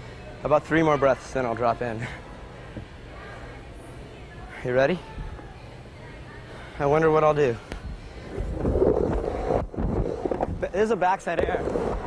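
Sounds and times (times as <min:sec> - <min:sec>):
skateboard wheels rolling on wood: 0:08.4 - 0:12.0.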